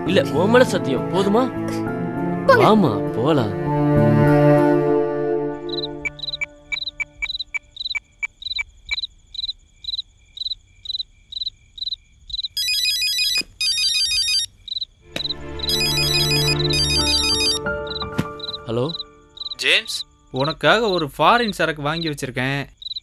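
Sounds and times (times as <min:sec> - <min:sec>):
background music: 0:00.0 - 0:07.2, 0:15.1 - 0:20.9
crickets chirping: 0:05.5 - 0:23.0
mobile phone ringtone: 0:05.7 - 0:07.6, 0:12.6 - 0:14.5, 0:15.2 - 0:20.0.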